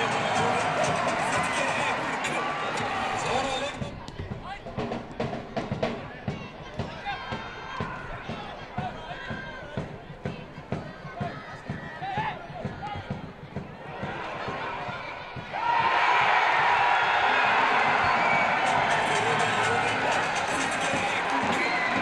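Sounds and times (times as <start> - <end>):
people shouting: 0.0 - 3.8, 6.0 - 22.0
stadium crowd cheering: 0.0 - 22.0.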